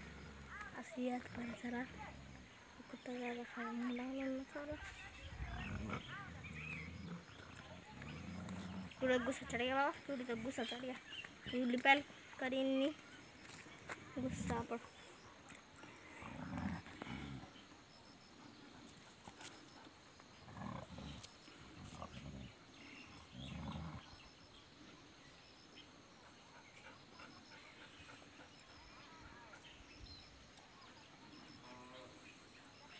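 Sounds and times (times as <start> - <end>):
dog growling low: 0.0 - 0.7, 5.1 - 9.5, 15.8 - 17.7, 20.2 - 24.3.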